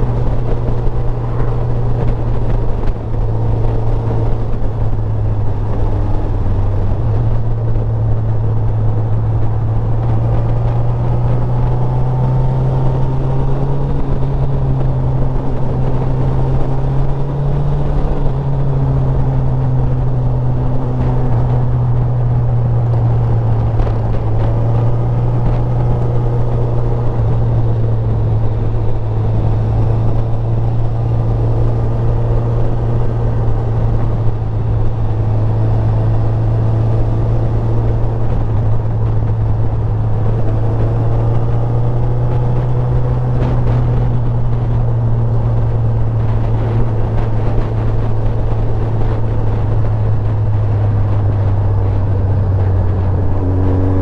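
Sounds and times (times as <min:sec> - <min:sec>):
motorcycle engine cruising: 0:00.0 - 0:54.0.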